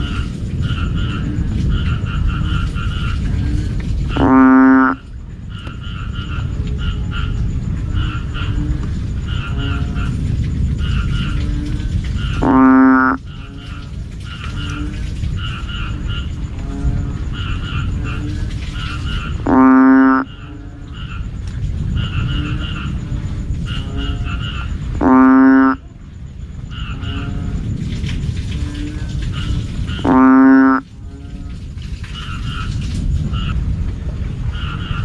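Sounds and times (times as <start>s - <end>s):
chorus of high frog calls: 0.0s - 33.8s, 34.4s - 35.0s
frog low droning call: 0.0s - 33.8s, 34.4s - 35.0s.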